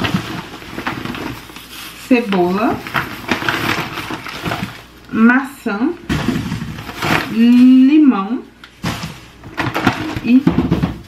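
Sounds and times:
plastic bags rustling and crinkling: 0.0s - 5.1s, 6.0s - 8.1s, 8.7s - 11.0s.

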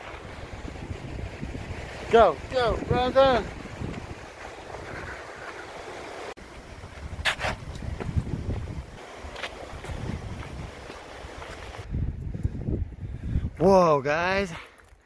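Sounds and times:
wind buffeting microphone: 0.0s - 13.8s.

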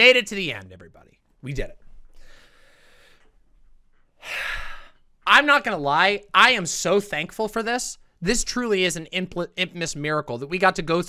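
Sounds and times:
faint breath: 2.1s - 3.4s, 4.2s - 5.0s
woman sighing: 4.2s - 5.0s.

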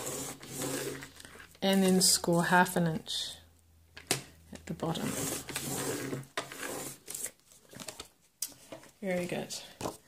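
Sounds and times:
scoring blade scraping paper: 0.0s - 1.6s, 4.8s - 7.4s.

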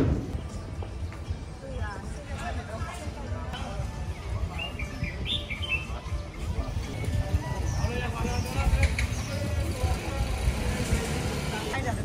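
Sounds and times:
low street rumble: 0.0s - 12.0s.

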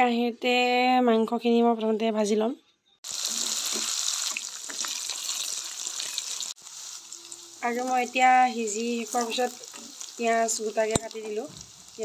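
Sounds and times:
meat sizzling in hot oil: 3.0s - 12.0s.

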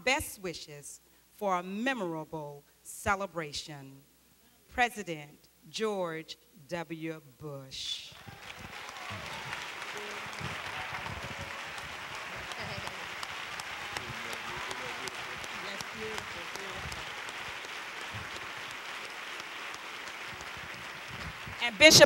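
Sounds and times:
crowd applauding: 8.1s - 22.0s
faint voices: 8.2s - 22.0s.

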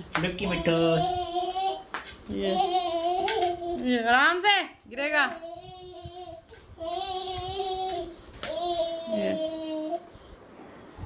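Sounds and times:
child singing: 0.4s - 1.9s, 2.5s - 3.8s, 5.4s - 10.1s.

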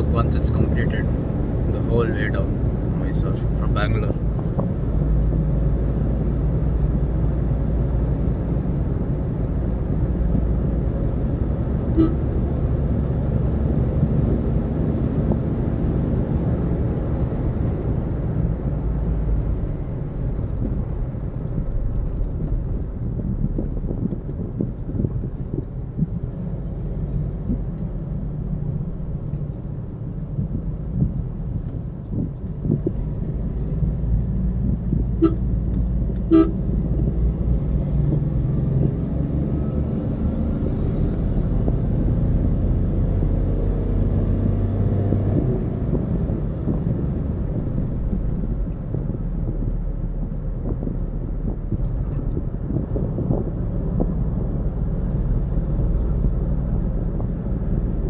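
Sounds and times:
road and engine rumble in car: 0.0s - 58.0s
short horn toots: 11.9s - 12.3s, 35.2s - 35.5s, 36.2s - 36.6s.

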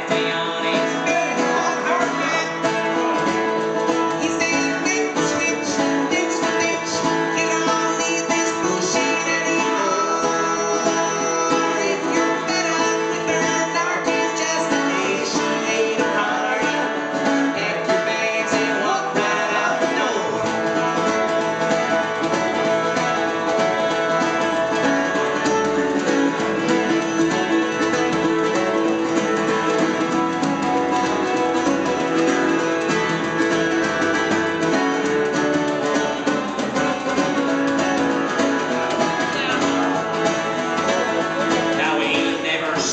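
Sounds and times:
acoustic guitar strumming: 0.0s - 42.9s.

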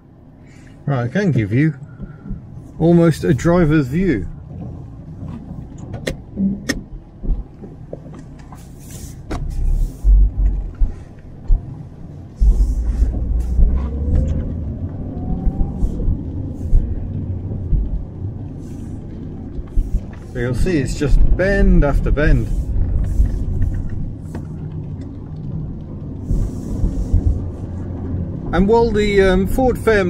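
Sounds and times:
car engine and road rumble: 0.0s - 30.0s.

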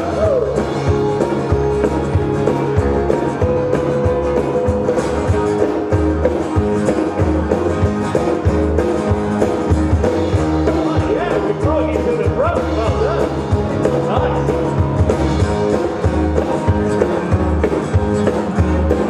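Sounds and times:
acoustic guitar: 0.0s - 19.0s
live band music: 0.0s - 19.0s.

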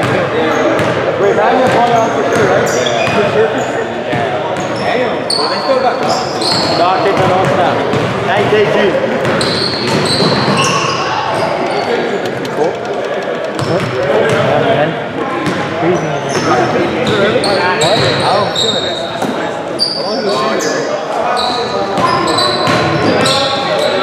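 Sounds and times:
sneakers squeaking on hardwood: 1.6s - 3.8s, 4.5s - 8.5s, 9.2s - 12.3s, 15.4s - 24.0s
basketball dribbling: 6.0s - 8.5s, 11.7s - 14.5s.

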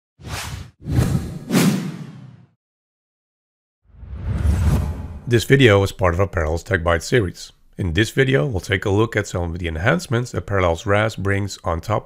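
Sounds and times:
whooshes with heavy low end: 3.9s - 5.3s.

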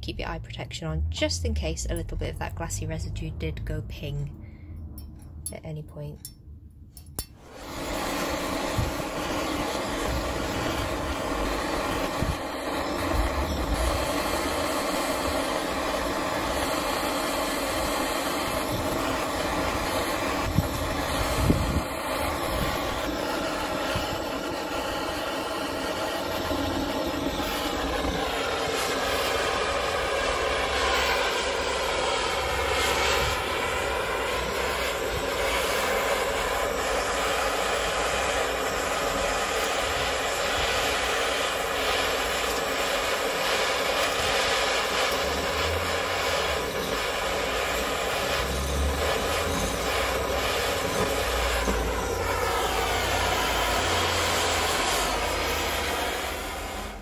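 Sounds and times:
gas torch flame hissing: 7.2s - 57.0s.

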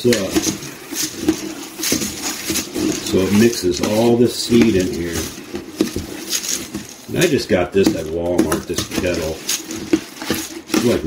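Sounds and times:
seeds rustling while stirred: 0.0s - 11.0s
utensil scraping metal pot: 0.0s - 11.0s.

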